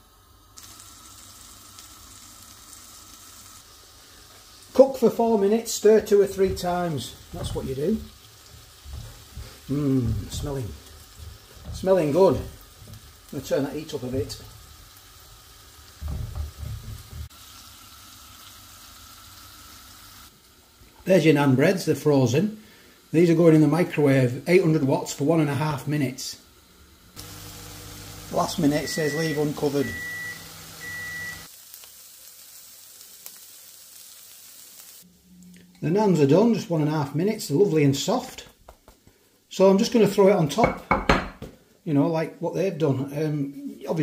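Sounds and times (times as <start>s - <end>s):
chicken sizzling in a pan: 0.0s - 35.1s.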